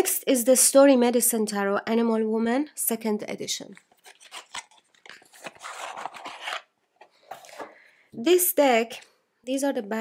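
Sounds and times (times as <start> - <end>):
card rustle: 3.7 - 7.8
cards clicking and rubbing: 3.9 - 7.7.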